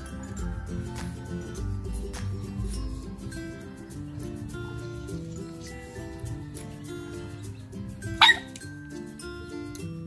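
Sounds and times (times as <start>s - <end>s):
background music with held notes: 0.0s - 10.0s
dog bark: 8.2s - 8.6s.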